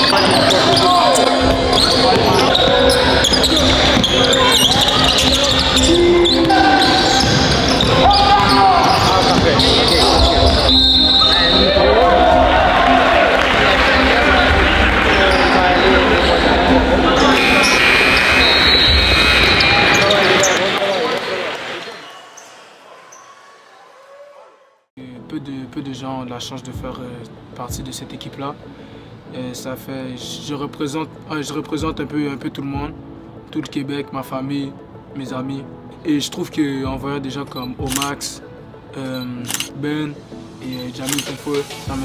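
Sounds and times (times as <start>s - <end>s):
shoe squeals: 0.0s - 11.9s, 17.2s - 21.2s, 21.8s - 24.1s, 37.5s - 38.1s
crowd shouting: 0.1s - 24.9s.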